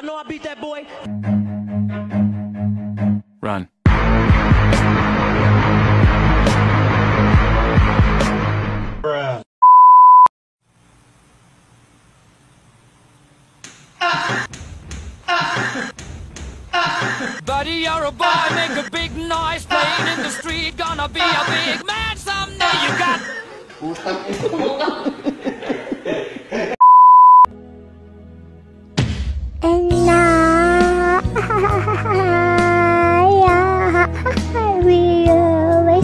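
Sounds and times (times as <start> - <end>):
steady test tone beep: 9.6 - 10.3, 26.8 - 27.5.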